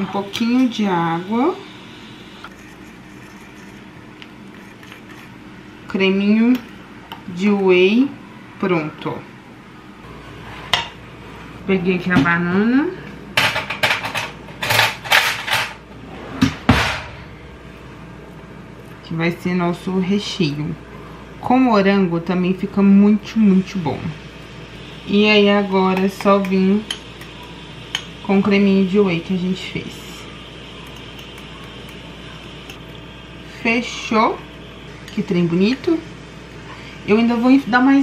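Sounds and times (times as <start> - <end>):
low hum: 15.8 - 26.7.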